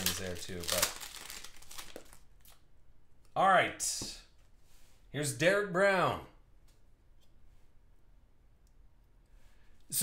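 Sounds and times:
foil wrapper crinkling: 0.0s - 2.6s.

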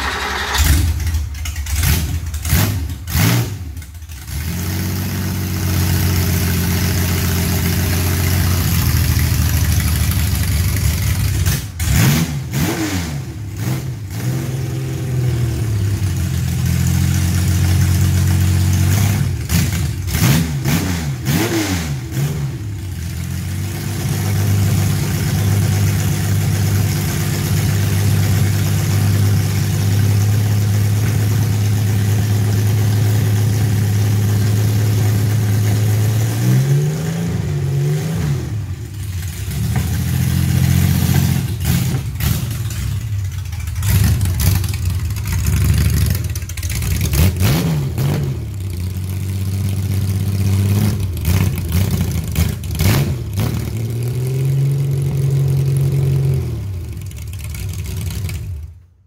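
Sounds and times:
car engine idling: 0.0s - 11.9s, 14.8s - 20.2s, 22.6s - 36.3s, 38.6s - 47.4s
engine revving in throttle blips: 11.8s - 16.0s, 18.9s - 22.8s, 32.6s - 42.8s, 47.1s - 57.0s.

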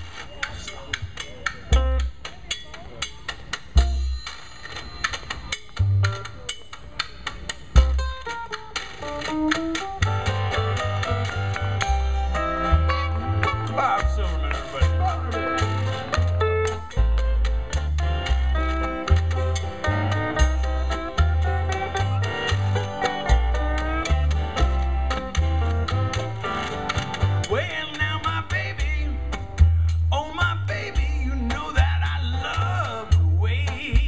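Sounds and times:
acoustic guitar: 0.0s - 34.0s
plucked strings sliding notes: 0.0s - 34.0s
upright bass walking line: 0.0s - 34.0s.

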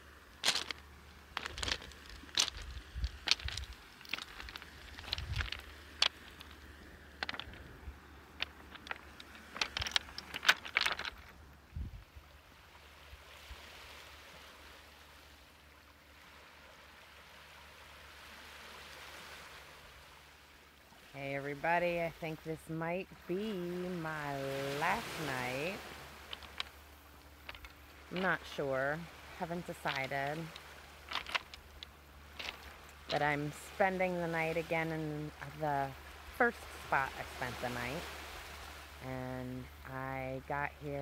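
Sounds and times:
waves washing onto pebble shore: 0.0s - 11.5s, 12.4s - 41.0s
footsteps crunching on pebbles: 0.3s - 11.4s, 24.8s - 33.7s.

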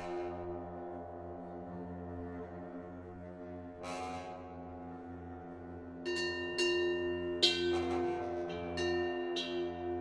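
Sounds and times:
low sustained brass tones: 0.0s - 10.0s
bell-like percussion ringing: 6.1s - 10.0s.

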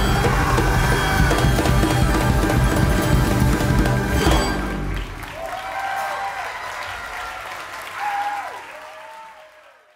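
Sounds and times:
live folk ensemble playing: 0.0s - 5.2s.

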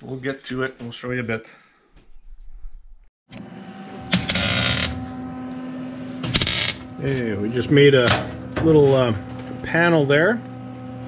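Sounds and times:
steady hum: 3.4s - 11.0s
welding arc crackle: 4.1s - 5.1s, 6.2s - 6.9s.

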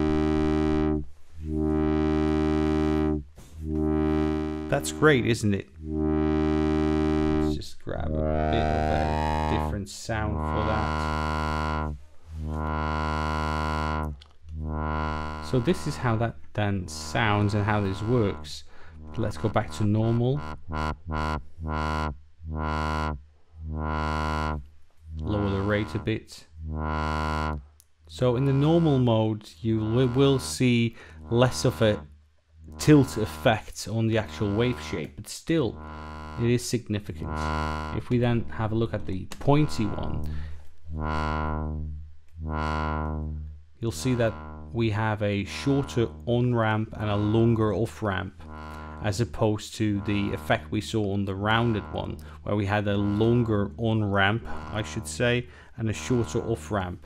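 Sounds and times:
low synthesizer drone: 0.0s - 32.0s, 32.6s - 39.0s, 39.6s - 56.8s.

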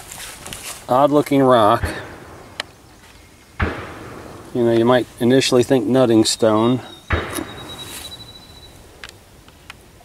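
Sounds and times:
soft rustling handling noise: 0.0s - 1.6s.

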